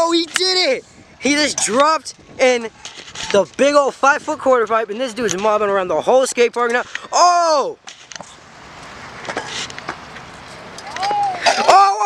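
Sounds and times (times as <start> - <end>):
scooter wheels rolling on concrete: 0.0 - 12.0.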